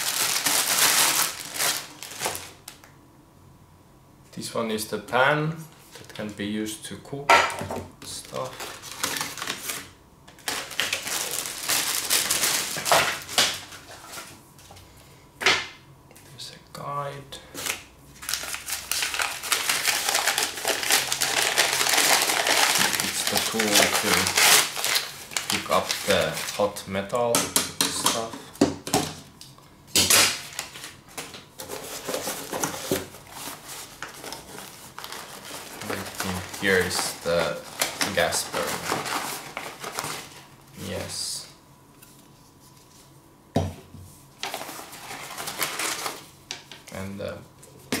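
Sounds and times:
packing paper crinkling: 0.0s - 2.9s, 8.1s - 14.3s, 17.5s - 26.8s, 30.1s - 41.3s, 44.4s - 47.9s.

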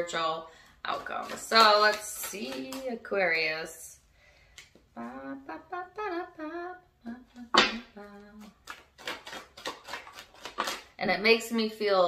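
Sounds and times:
woman singing softly: 4.9s - 8.6s.

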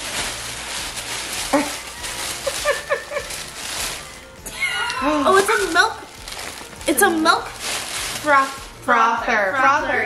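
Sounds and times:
tissue paper rustling: 0.0s - 9.7s.

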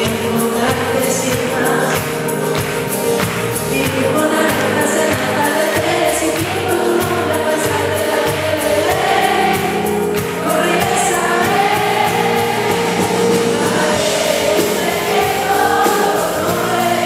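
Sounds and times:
woman singing: 0.0s - 2.4s, 3.7s - 17.0s
acoustic guitar: 0.0s - 17.0s
electric bass: 0.0s - 17.0s.

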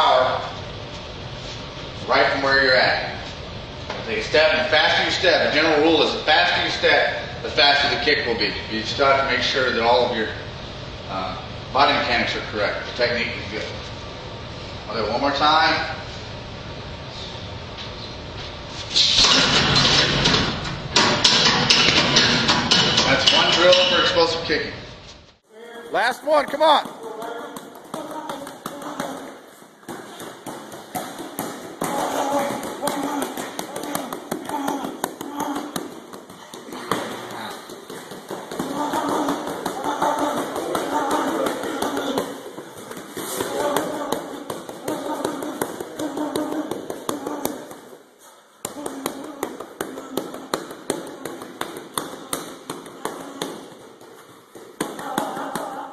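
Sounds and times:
indistinct talking: 38.5s - 47.9s.

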